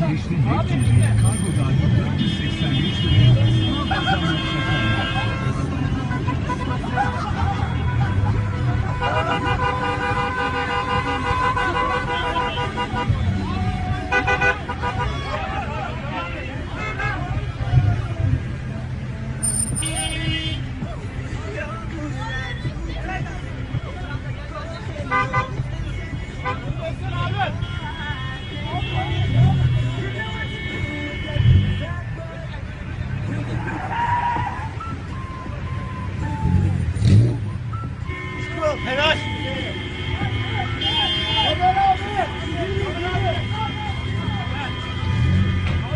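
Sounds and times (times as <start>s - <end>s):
road and engine noise: 0.0s - 45.9s
car horns honking: 0.6s - 13.4s, 14.1s - 15.3s, 19.4s - 20.8s, 25.0s - 32.1s, 36.0s - 45.9s.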